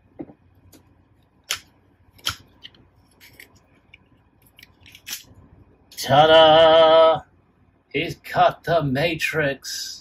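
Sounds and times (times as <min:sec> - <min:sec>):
plastic toy clicks and snaps: 0:01.5 - 0:02.5.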